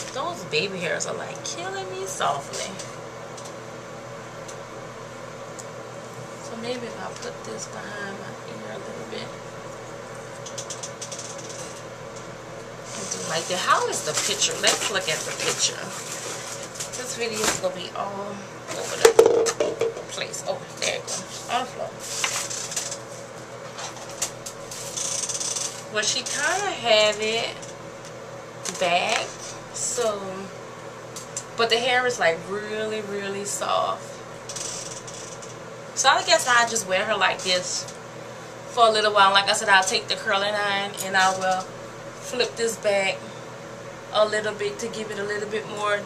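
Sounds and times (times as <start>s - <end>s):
room hiss with low hum: 0.0s - 46.0s.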